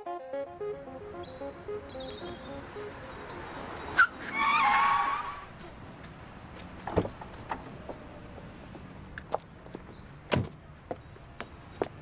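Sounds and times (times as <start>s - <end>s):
theme music: 0.0s - 3.8s
birdsong: 0.9s - 4.4s, 5.6s - 12.0s.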